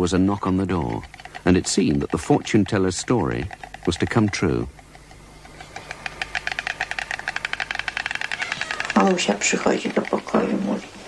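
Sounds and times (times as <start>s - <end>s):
stork clattering its bill: 0.0s - 11.0s.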